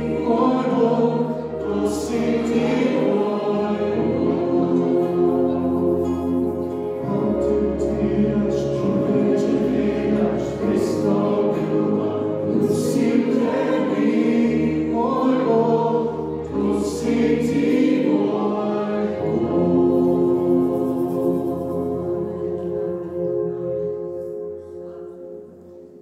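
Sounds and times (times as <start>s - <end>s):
voices singing together: 0.0s - 23.2s
acoustic guitars: 0.0s - 25.9s
keyboard holding chords: 0.0s - 26.0s.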